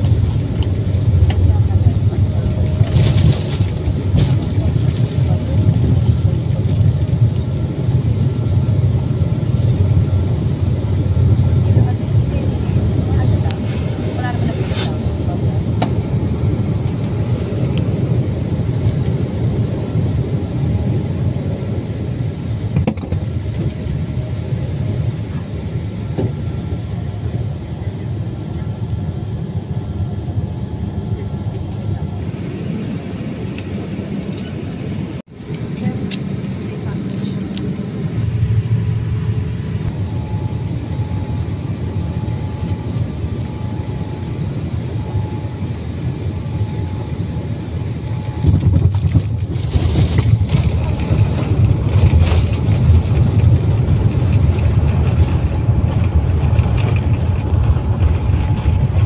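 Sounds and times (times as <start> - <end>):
airplane cabin engine rumble: 0.0 - 59.0.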